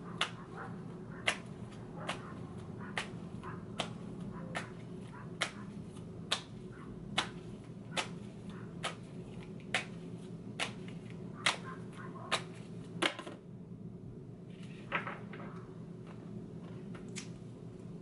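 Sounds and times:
cards being shuffled: 0:07.1 - 0:13.0.

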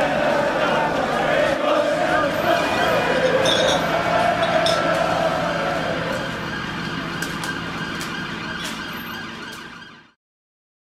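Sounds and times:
siren: 0:00.0 - 0:10.2
street traffic noise: 0:00.0 - 0:10.2.

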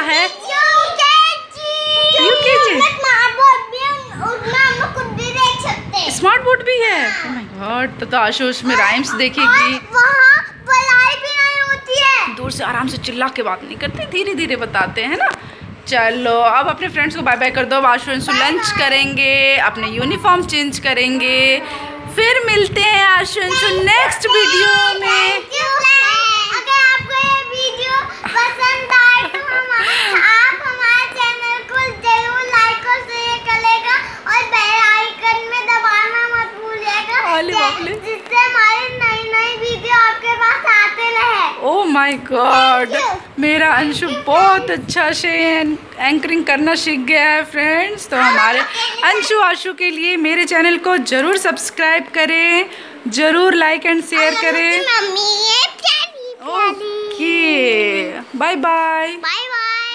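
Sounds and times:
boy talking in sing-song voice: 0:18.2 - 0:20.3, 0:42.7 - 0:44.9, 0:54.1 - 0:57.4.

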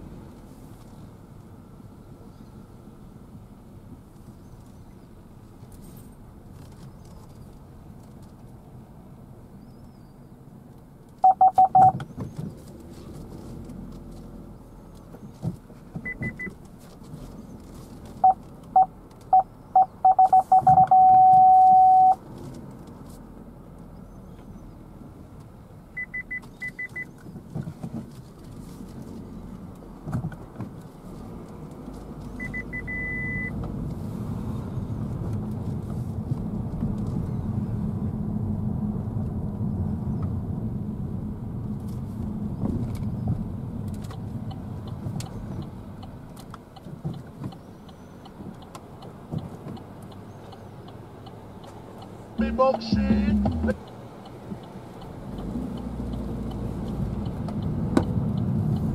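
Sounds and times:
car engine and tyre rumble: 0:00.0 - 0:58.9
short high-pitched beeps: 0:11.2 - 0:11.9, 0:18.2 - 0:22.2, 0:32.4 - 0:33.5
parking sensor beeping: 0:11.2 - 0:12.0, 0:16.0 - 0:16.6, 0:18.2 - 0:22.2, 0:25.9 - 0:27.1, 0:32.4 - 0:33.6, 0:52.4 - 0:53.9.

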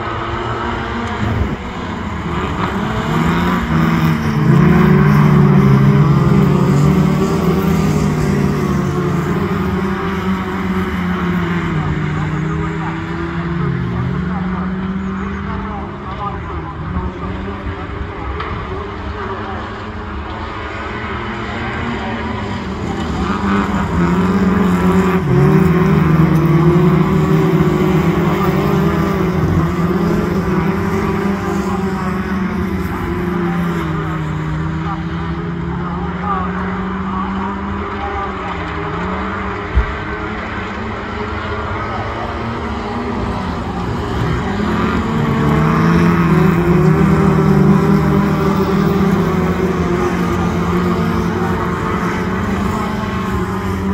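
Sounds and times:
racing car engines revving: 0:00.0 - 0:53.9.

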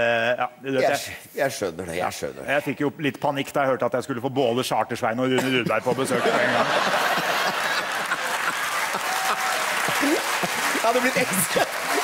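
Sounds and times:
men laughing: 0:05.4 - 0:12.0
audience applauding: 0:06.2 - 0:12.0.

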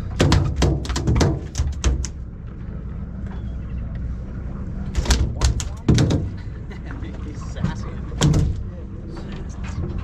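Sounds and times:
boat low rumble: 0:00.0 - 0:10.0.

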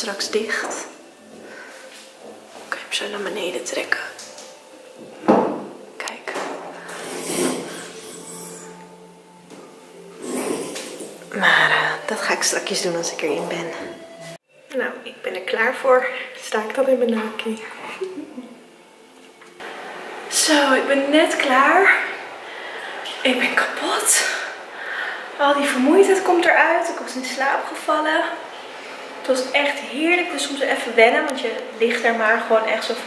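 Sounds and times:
room hiss: 0:00.0 - 0:13.2, 0:13.9 - 0:33.0.

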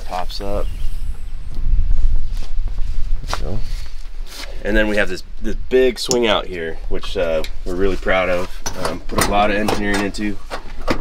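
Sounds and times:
wind on microphone: 0:00.0 - 0:04.4.

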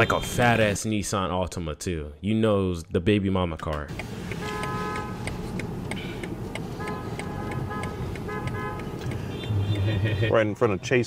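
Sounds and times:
car road and engine noise: 0:03.7 - 0:11.0
car horn honks: 0:04.3 - 0:05.4, 0:06.8 - 0:09.9.

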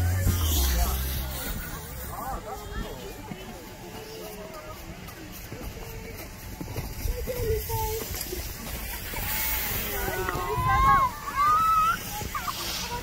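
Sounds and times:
low rumbles: 0:00.0 - 0:03.9
people chatting: 0:00.0 - 0:13.0.

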